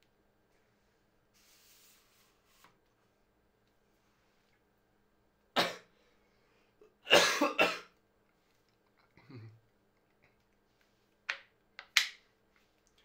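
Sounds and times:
man coughing: 0:07.1 - 0:07.9.

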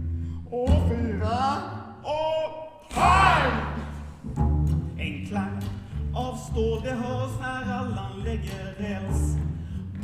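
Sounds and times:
double bass low notes: 0:00.0 - 0:01.9, 0:03.0 - 0:10.0
person shouting a cry: 0:02.9 - 0:03.8.

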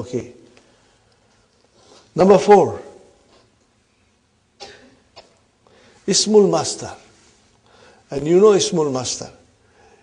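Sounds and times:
quiet cough-like throat sound: 0:04.6 - 0:05.5.

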